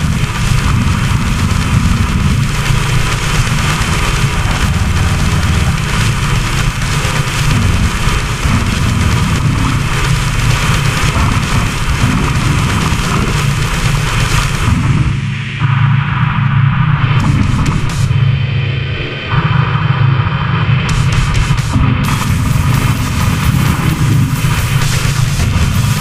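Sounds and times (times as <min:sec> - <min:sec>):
death metal music: 0:00.0 - 0:26.0.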